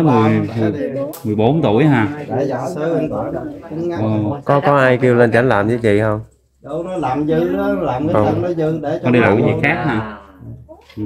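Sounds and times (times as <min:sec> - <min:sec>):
conversational speech: 0:00.0 - 0:11.0.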